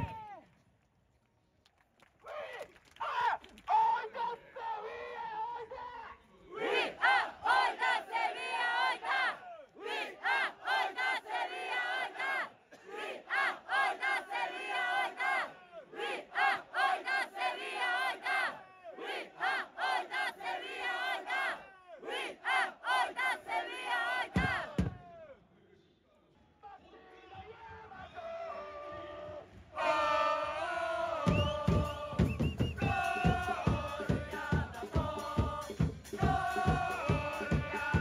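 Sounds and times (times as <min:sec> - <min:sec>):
crowd chanting: 0:03.7 - 0:25.4, 0:26.6 - 0:38.0.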